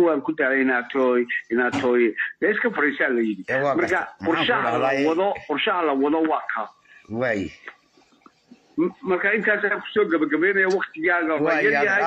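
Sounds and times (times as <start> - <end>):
man talking: 0.0 - 7.7, 8.8 - 12.0.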